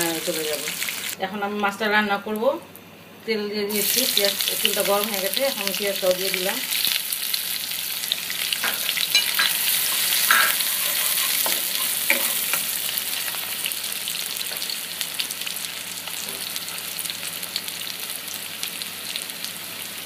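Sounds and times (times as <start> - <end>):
onions sizzling in hot oil: 0.0 - 1.2, 3.7 - 20.0
spatula scraping a pan: 8.9 - 12.7.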